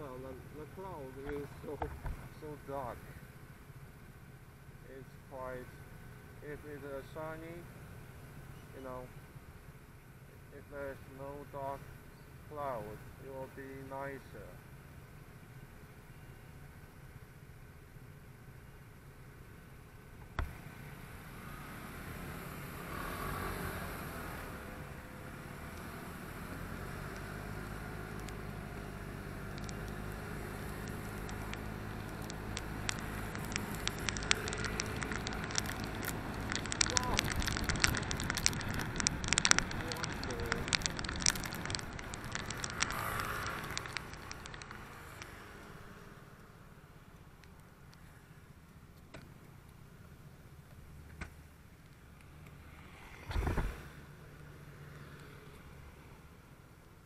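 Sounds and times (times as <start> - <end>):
crackling clicks on microphone: 1.2 - 2.5, 25.6 - 45.8, 47.1 - 49.8
tyre and wind noise: 53.1 - 54.0.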